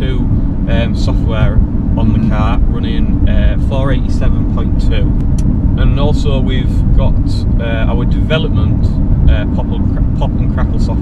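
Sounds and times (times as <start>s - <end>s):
man talking: 0.0s - 5.2s, 5.8s - 11.0s
road and engine rumble: 0.0s - 11.0s.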